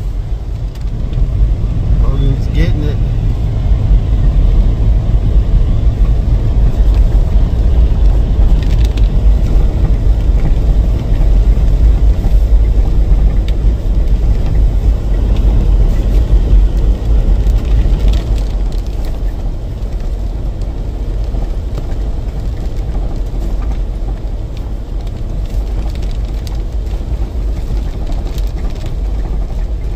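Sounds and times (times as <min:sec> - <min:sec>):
vehicle rumbling on rough trail: 0:00.0 - 0:29.9.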